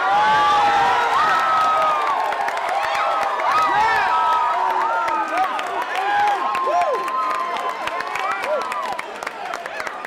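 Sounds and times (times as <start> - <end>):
crowd cheering and yelling: 0.0 - 10.0.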